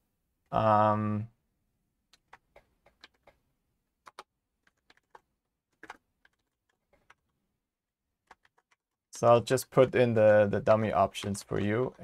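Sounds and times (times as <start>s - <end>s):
computer keyboard keystrokes: 2.1s - 3.4s, 4.0s - 7.3s, 8.3s - 8.9s.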